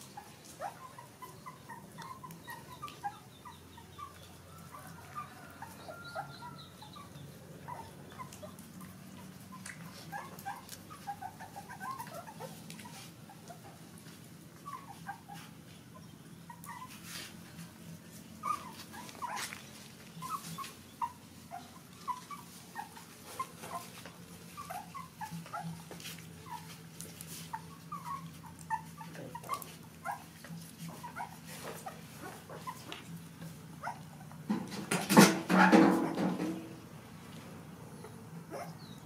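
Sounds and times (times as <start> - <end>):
puppies squeaking and whimpering: 0.0 - 17.4, 18.1 - 34.6, 38.0 - 39.0.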